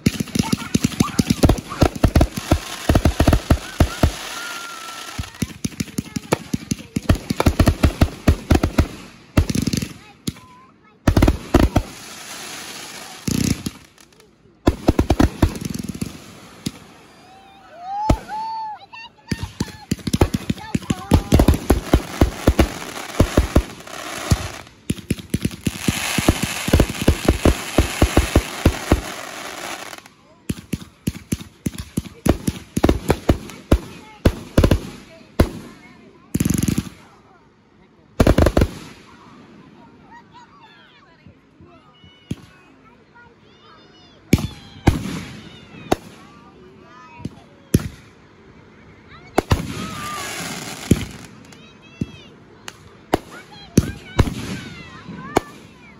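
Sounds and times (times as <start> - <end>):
fireworks bangs: 0.0 - 17.2, 17.8 - 37.2, 38.2 - 39.6, 44.3 - 46.5, 47.1 - 48.2, 49.2 - 55.9
fireworks crackling: 0.0 - 37.4, 38.2 - 40.5, 43.5 - 48.3, 49.1 - 55.9.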